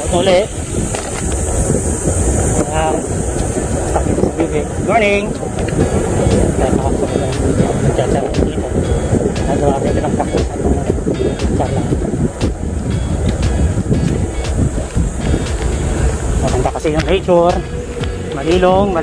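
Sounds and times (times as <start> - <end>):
bike tyres humming on pavement: 0.0 - 19.0
wind buffeting microphone: 0.0 - 19.0.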